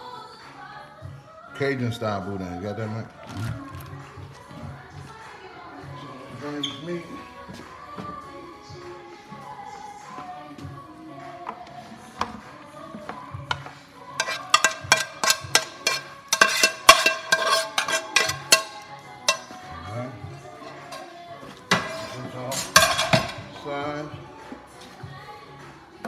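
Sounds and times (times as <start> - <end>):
background music: 0.0 - 26.0
utensil scraping skillet: 13.1 - 19.8, 20.4 - 23.7.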